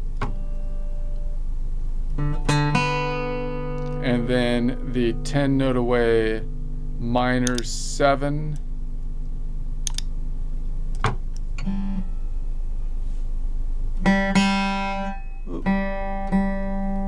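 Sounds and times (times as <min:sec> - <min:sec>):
acoustic guitar notes picked: 0:00.0 - 0:01.5, 0:02.1 - 0:08.9, 0:11.5 - 0:13.2, 0:14.0 - 0:17.0.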